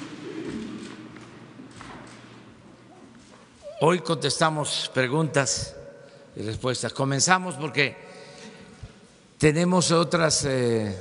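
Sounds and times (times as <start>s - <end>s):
voices in echoing hall: 0.0s - 11.0s
man's amplified voice: 3.7s - 8.3s, 9.4s - 11.0s.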